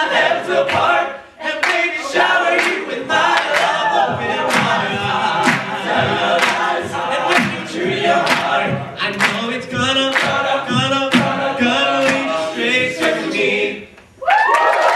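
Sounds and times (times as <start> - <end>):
male a cappella singing: 0.0 - 13.8
vocal percussion: 0.0 - 14.0.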